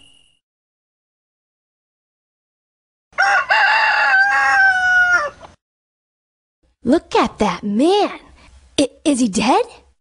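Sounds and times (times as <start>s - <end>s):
rooster crowing: 3.1s - 5.5s.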